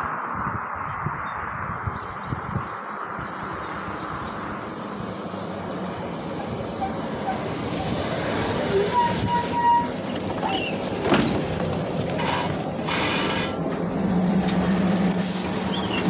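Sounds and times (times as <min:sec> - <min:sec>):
bus engine approaching: 0:00.0 - 0:16.0
brakes squealing: 0:05.5 - 0:16.0.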